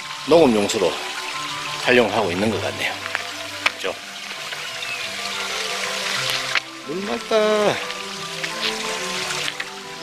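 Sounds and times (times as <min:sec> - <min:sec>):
background music held notes: 0:00.0 - 0:10.0
water trickling into pool: 0:00.0 - 0:10.0.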